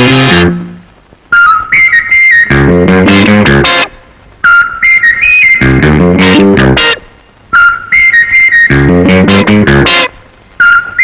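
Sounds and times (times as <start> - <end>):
plucked guitar and bass notes: 0.0 - 0.9, 2.4 - 3.9, 5.6 - 7.9, 8.7 - 10.2
high whistle-like melody: 1.3 - 2.7, 4.4 - 5.8, 7.5 - 8.9, 10.6 - 11.0.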